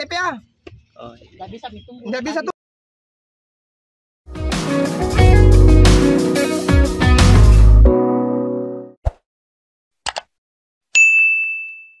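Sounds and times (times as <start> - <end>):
bell-like notification ding: 11.0 - 12.0.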